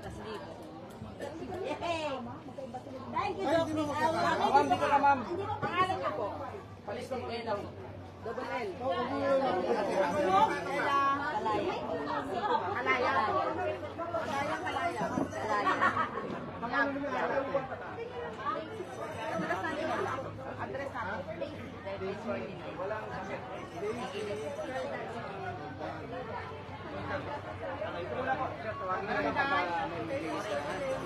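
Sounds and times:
crowd chatter: 0.0 - 31.0.

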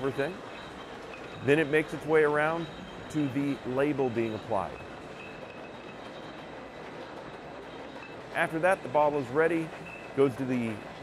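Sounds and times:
bottling machinery rattle and hum: 0.0 - 11.0.

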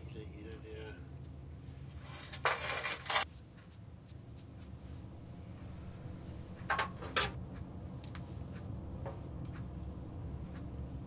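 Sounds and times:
low workshop hum: 0.0 - 11.0.

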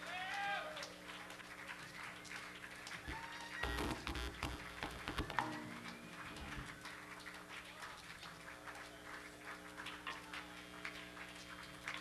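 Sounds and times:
guitar notes: 3.6 - 6.6
low droning tones: 3.6 - 6.7.

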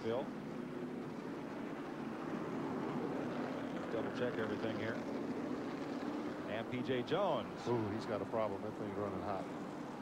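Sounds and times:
distant race truck engines: 0.0 - 10.0
wind-like outdoor haze: 0.0 - 10.0.

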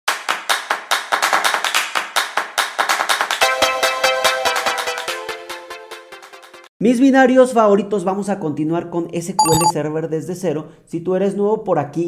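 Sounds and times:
sharp clap-like percussion hits: 0.1 - 3.4.

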